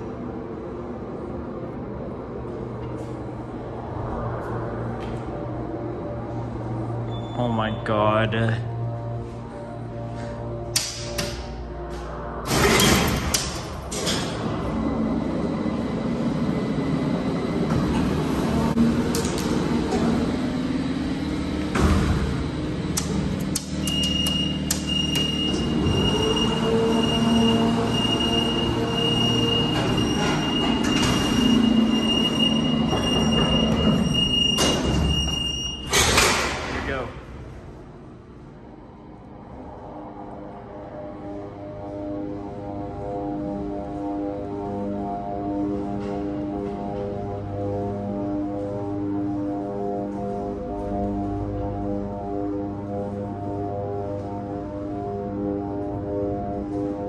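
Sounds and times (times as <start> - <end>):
elevator pump motor rumble: 8.7 - 36.3.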